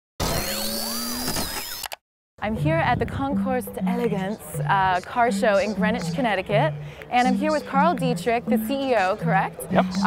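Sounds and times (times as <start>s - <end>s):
buzzing hum: 0.2s - 1.8s
synthesized tones with pitch glides: 2.5s - 10.0s.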